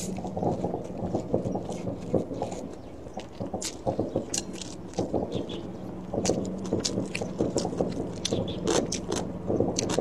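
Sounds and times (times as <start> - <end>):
mouth chewing noodles: 6.2 - 10.0.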